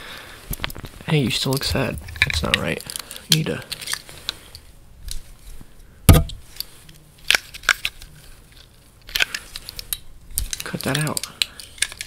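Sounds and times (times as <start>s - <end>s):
objects clicking and knocking: 1.5s - 4.0s, 7.2s - 12.0s.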